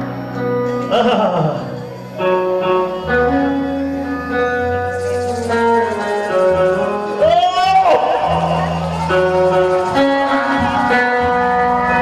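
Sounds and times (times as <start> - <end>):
bass line: 0.0 - 12.0
electric guitar melody: 0.0 - 12.0.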